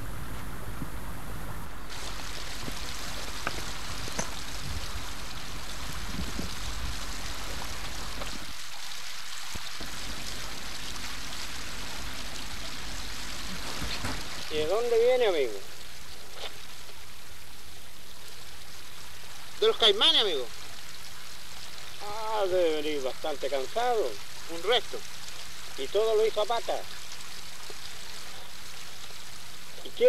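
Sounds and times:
river rushing: 1.9s - 30.0s.

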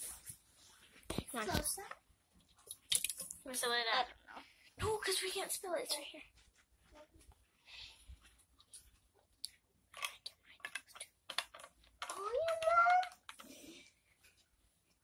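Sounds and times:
small things handled by hand: 6.2s - 15.0s.

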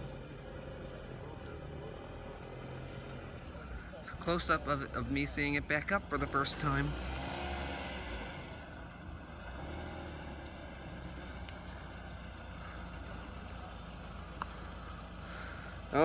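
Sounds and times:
car engine low rumble: 0.0s - 16.0s.

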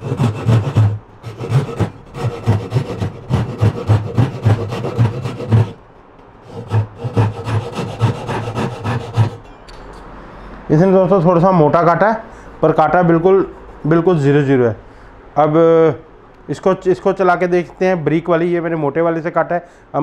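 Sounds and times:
hand saw cutting wood: 0.0s - 5.8s, 6.4s - 9.4s.

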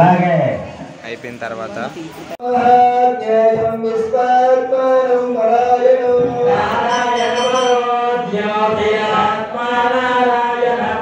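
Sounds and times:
sung mantra recitation: 2.4s - 11.0s.

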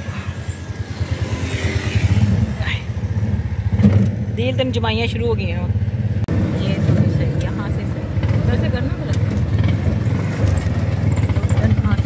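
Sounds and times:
auto-rickshaw engine running: 0.0s - 12.0s.

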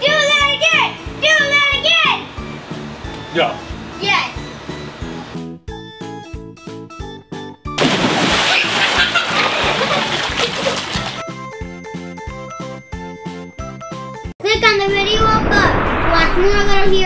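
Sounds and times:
splash into swimming pool: 7.8s - 11.2s
water sloshing: 7.8s - 11.2s.

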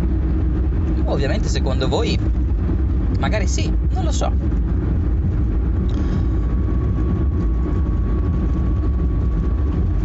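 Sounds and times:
car engine and road noise: 0.0s - 10.0s.

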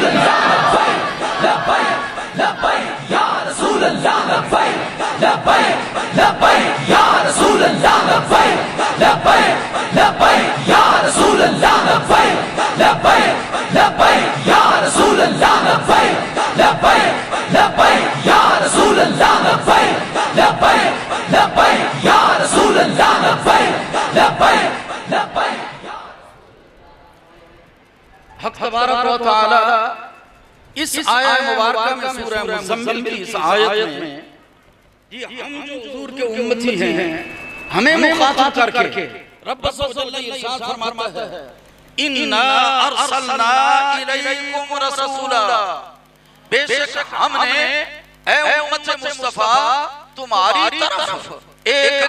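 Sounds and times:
crowd of men shouting in unison: 0.0s - 26.3s.

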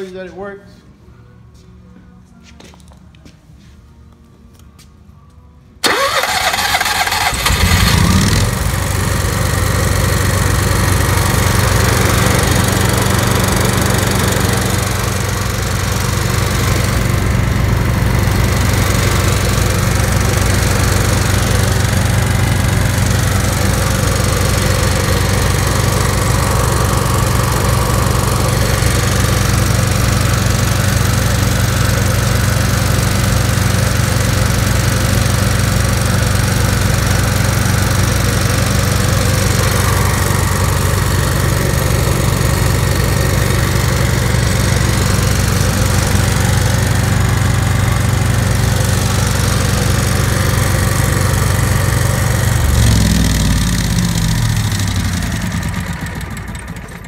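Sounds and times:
generator engine running: 5.8s - 57.0s
generator starter cranking: 5.8s - 57.0s.

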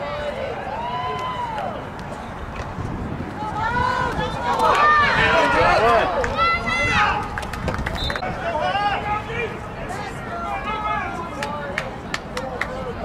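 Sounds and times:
people shouting outdoors: 3.4s - 7.4s, 8.3s - 11.7s.

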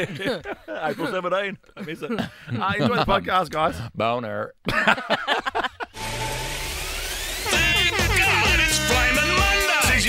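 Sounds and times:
radio station jingle: 6.0s - 10.0s.

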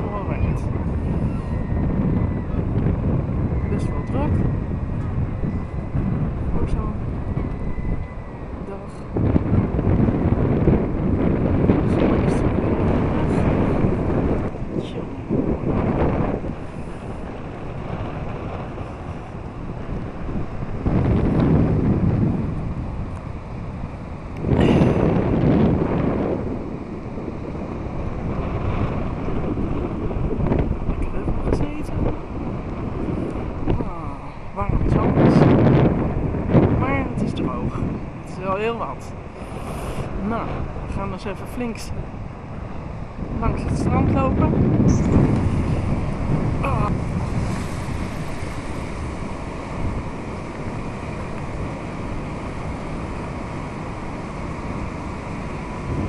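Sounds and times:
strong wind buffeting microphone: 0.0s - 56.0s.

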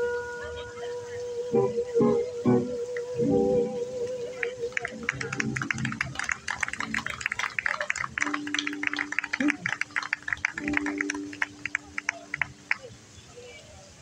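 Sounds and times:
crowd clapping: 4.4s - 12.9s.

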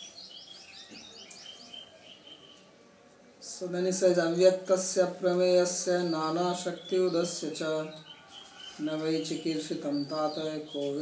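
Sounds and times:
bird chirping: 0.0s - 2.7s, 3.5s - 11.0s.

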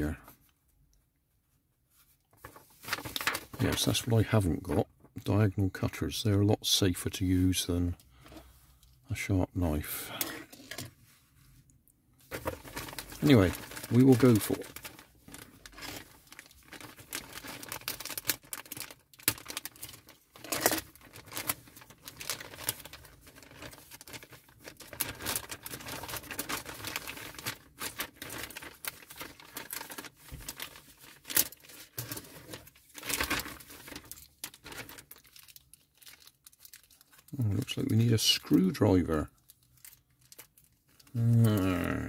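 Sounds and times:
plastic rustling: 1.9s - 4.8s, 10.0s - 42.0s.

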